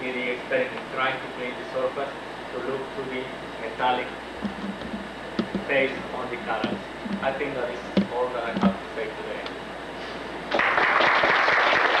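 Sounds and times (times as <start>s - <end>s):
audience applauding: 10.5s - 12.0s.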